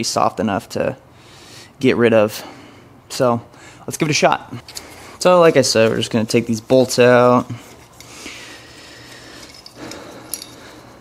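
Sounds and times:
metal parts clinking: 9.0s - 11.0s.

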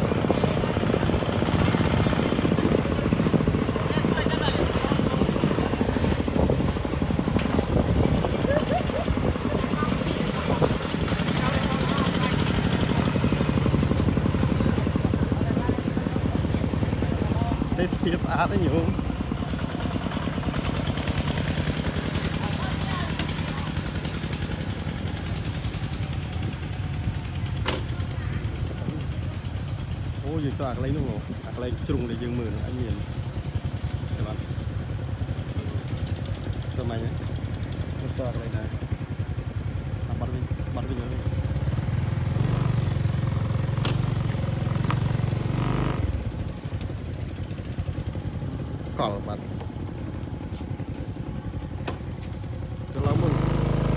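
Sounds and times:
diesel engine chugging: 0.0s - 53.9s.

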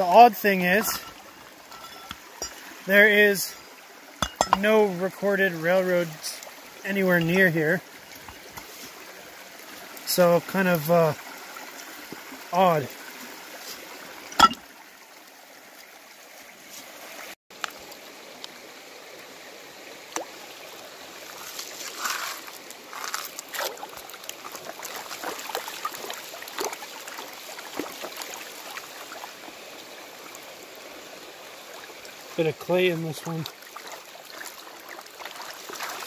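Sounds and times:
water sloshing: 0.0s - 5.2s, 13.1s - 14.8s, 21.2s - 29.6s, 33.0s - 36.0s
water running over rocks: 0.0s - 36.0s
gravel rattling in pan: 0.4s - 2.7s, 21.4s - 25.5s.

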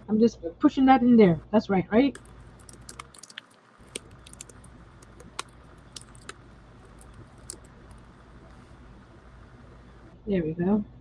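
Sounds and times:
low steady hum: 0.0s - 11.0s
small clicks and taps: 2.1s - 10.0s.

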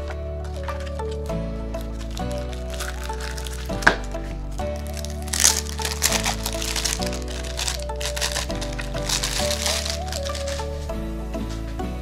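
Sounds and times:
background music with bass: 0.0s - 12.0s
plastic wrap crinkling: 1.8s - 10.8s.

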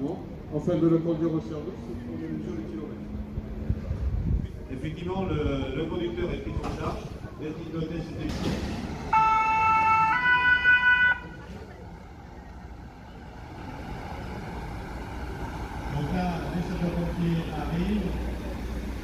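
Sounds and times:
vehicle engines passing: 0.0s - 19.0s
two-tone siren: 9.1s - 11.4s.

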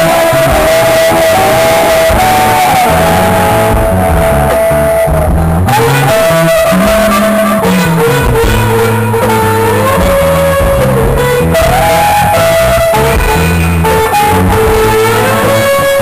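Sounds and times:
bass guitar: 0.0s - 16.0s
electric guitar lead line: 0.0s - 16.0s.

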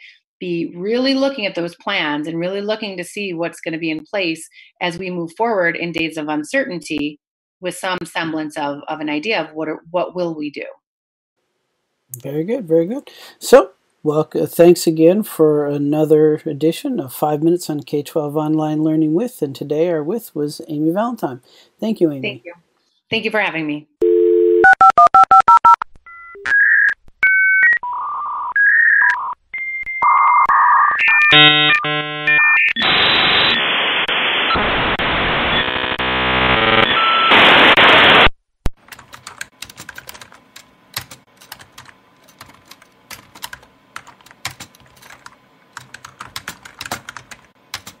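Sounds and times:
touch-tone dialing beeps: 24.0s - 27.8s
dial tone: 24.0s - 33.0s, 35.6s - 37.4s.

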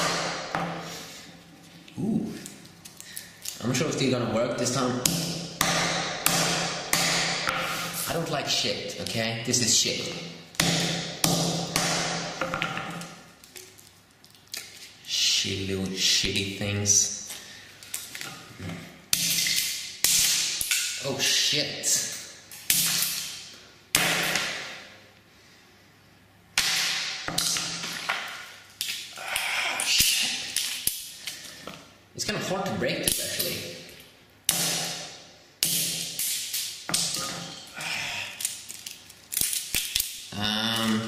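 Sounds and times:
sledgehammer hitting on concrete: 0.0s - 0.9s, 5.0s - 7.8s, 10.6s - 13.0s, 23.9s - 24.8s, 26.6s - 28.3s, 34.5s - 36.2s.

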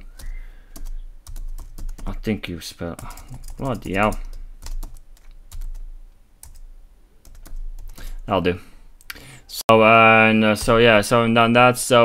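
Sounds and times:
typing on computer keyboard: 0.2s - 2.2s, 3.0s - 5.8s, 6.4s - 6.6s, 7.2s - 8.2s.

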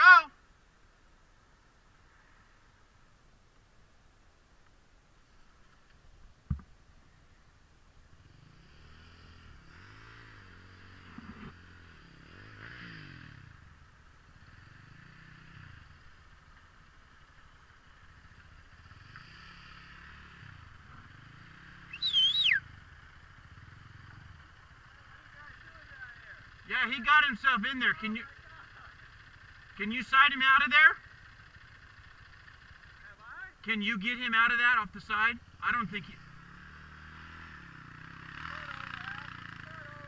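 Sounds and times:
distant atv engine revving: 8.0s - 40.0s.

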